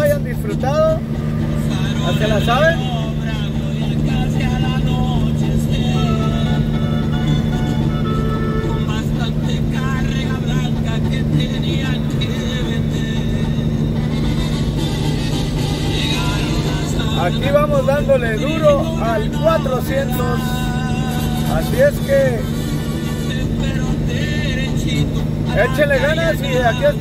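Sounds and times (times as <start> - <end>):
faint music or voice: 0.0 - 8.1, 16.1 - 27.0
truck engine and road noise: 0.0 - 27.0.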